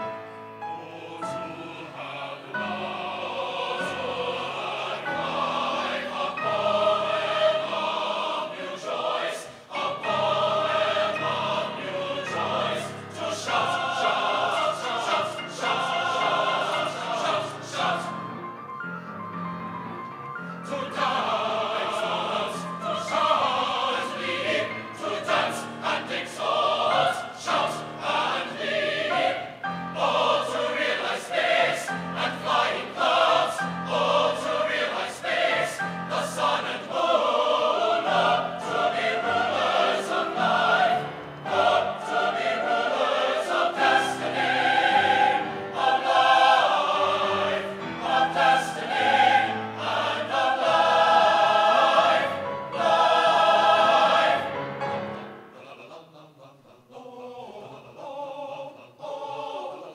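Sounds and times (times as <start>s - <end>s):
mixed choir singing: 0.0s - 18.7s, 20.4s - 59.9s.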